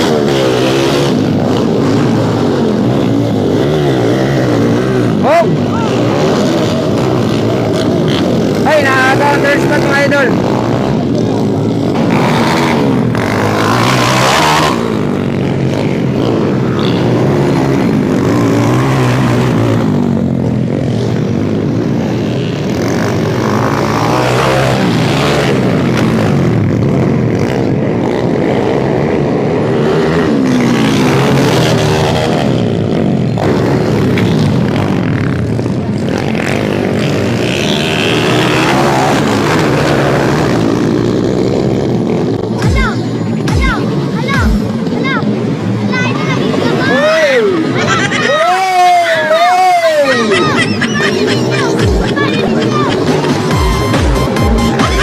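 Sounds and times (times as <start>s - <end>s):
voices: 0.0s - 20.2s, 41.9s - 55.0s
dirt bike engines revving: 0.0s - 55.0s.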